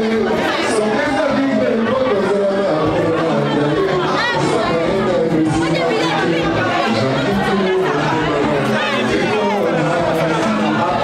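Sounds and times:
crowd chattering: 0:00.0 - 0:11.0
music: 0:00.0 - 0:11.0.

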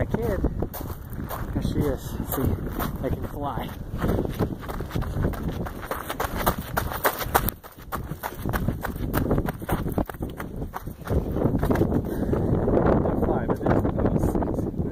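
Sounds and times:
wind on microphone: 0:00.0 - 0:14.9
footsteps on gravel: 0:00.1 - 0:12.3.

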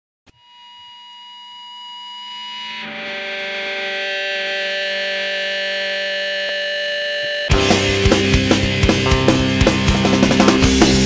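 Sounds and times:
distorted electric guitar chord: 0:00.4 - 0:11.0.

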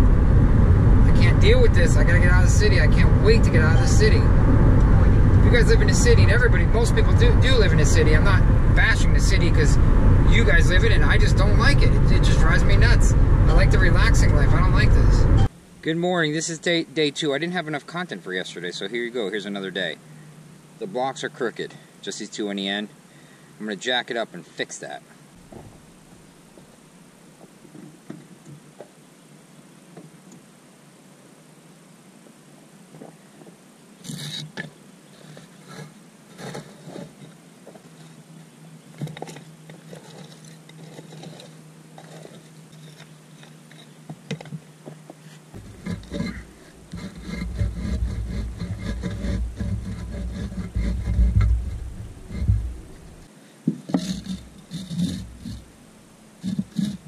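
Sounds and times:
loud low rumble: 0:00.0 - 0:15.5, 0:45.6 - 0:53.3
knocks clicks and scrapes: 0:35.4 - 0:37.9, 0:45.6 - 0:55.7, 0:56.4 - 0:57.0.

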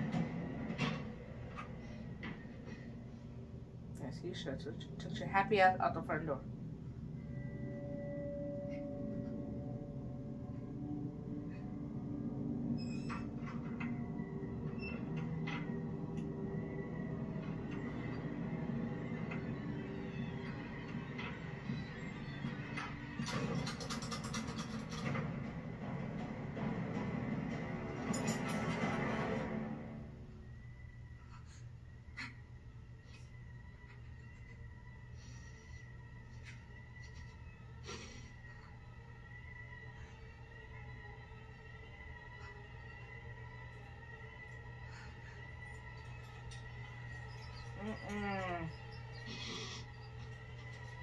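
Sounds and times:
low drone of held tones: 0:00.0 - 0:23.6, 0:25.0 - 0:51.0
tense horror music score: 0:00.0 - 0:51.0
rapid clicks: 0:22.8 - 0:25.4.

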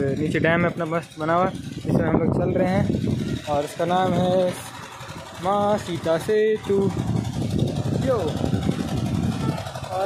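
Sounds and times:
generator engine rumbling: 0:00.0 - 0:10.0.

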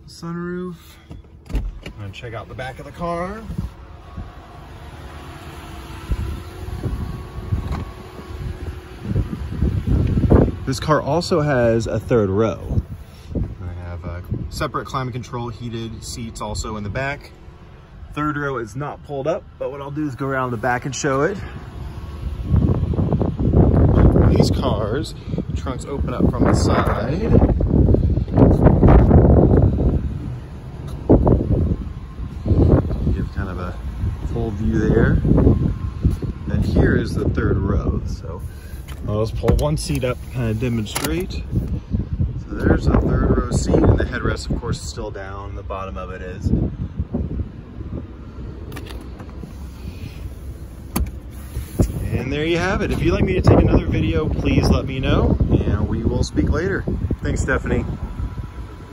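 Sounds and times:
car engine idling hum: 0:00.0 - 0:58.9
wind and handling noise on microphone: 0:00.9 - 0:58.9.

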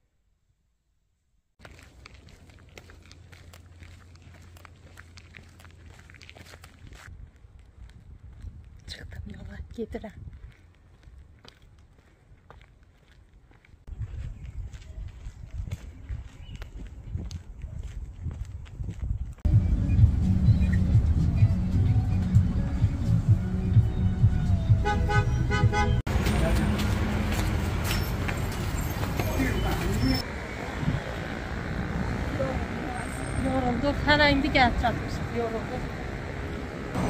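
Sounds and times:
outdoor traffic: 0:01.6 - 0:37.0
wind noise: 0:06.4 - 0:12.5, 0:13.9 - 0:19.5, 0:28.1 - 0:32.8
bus engine and road rumble: 0:14.6 - 0:37.0.

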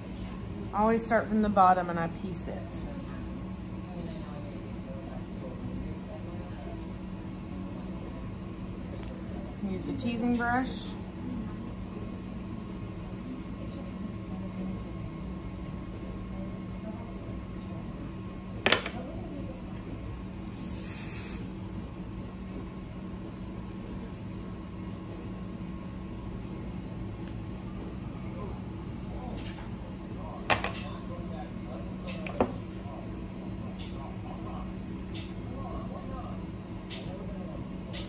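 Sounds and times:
steady low hum: 0:00.0 - 0:38.0
aerosol hairspray hiss: 0:20.6 - 0:21.5.

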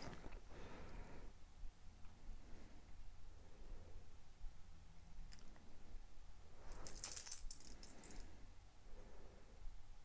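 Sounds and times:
dog collar tags jingling: 0:06.7 - 0:08.3.

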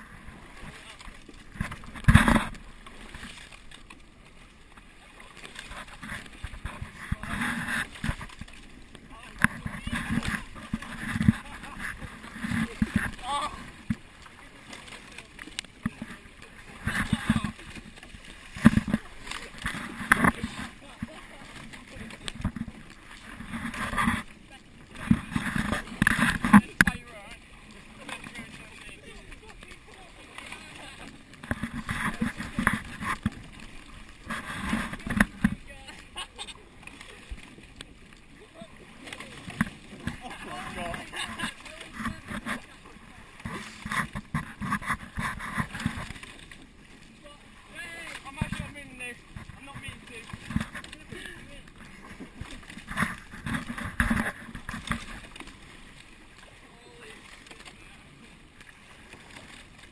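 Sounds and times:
oars splashing water: 0:00.0 - 0:59.9.

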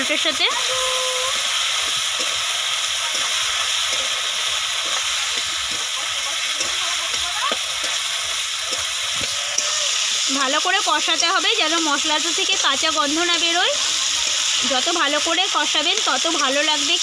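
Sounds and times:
potatoes sizzling in hot oil: 0:00.0 - 0:17.0.

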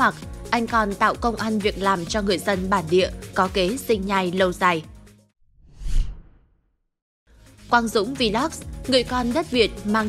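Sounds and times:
whoosh sound effect: 0:05.6 - 0:06.5.

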